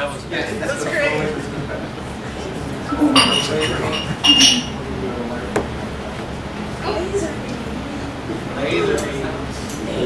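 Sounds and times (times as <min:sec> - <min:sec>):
crowd chatter: 0:00.0 - 0:10.0
glass clinking: 0:03.2 - 0:04.7.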